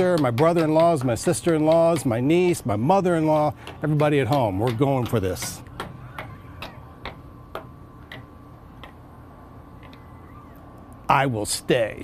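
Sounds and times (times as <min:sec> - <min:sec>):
wheel flapper clicking over pegs: 0:00.0 - 0:09.1.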